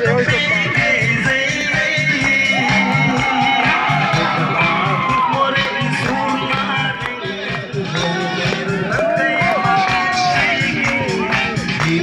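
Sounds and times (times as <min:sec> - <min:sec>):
person singing: 0:00.0 - 0:12.0.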